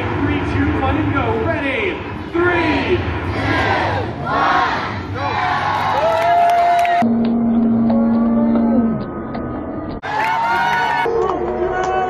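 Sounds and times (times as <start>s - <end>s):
crowd shouting a countdown: 2.4s - 9.1s
crowd long held shout: 3.4s - 7.1s, 10.0s - 12.0s.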